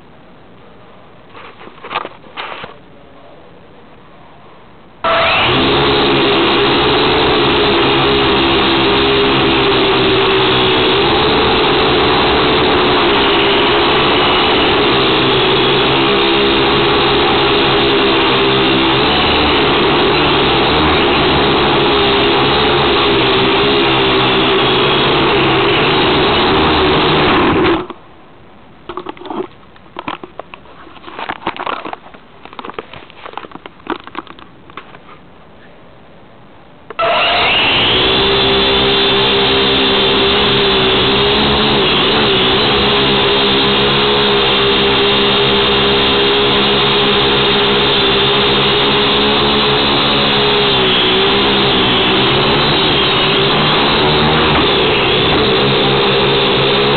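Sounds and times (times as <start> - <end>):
toy drone motors buzzing: 5.0 - 27.4, 37.0 - 56.9.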